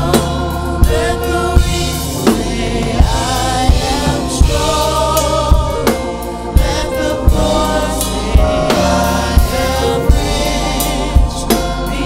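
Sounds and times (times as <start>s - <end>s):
backing singers: 0.0s - 12.0s
band with drums: 0.0s - 12.0s.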